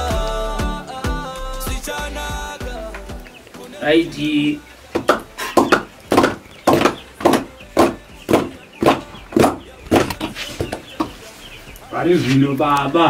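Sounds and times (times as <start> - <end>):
short sharp rhythmic beats: 0.0 - 4.2, 4.9 - 11.3.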